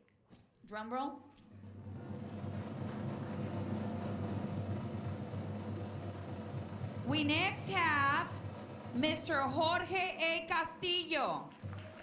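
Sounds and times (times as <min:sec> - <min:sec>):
crowd drumming rapidly: 0:01.8 - 0:10.5, 0:11.6 - 0:12.0.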